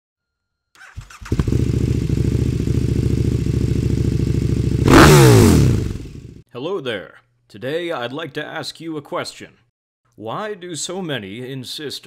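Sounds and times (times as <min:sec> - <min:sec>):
motorcycle engine revving: 0:00.8 - 0:06.4.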